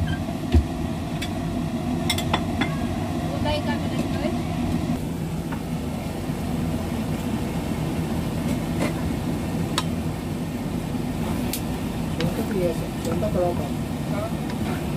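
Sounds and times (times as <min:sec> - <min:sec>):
low mechanical hum: 0:00.0 - 0:14.9.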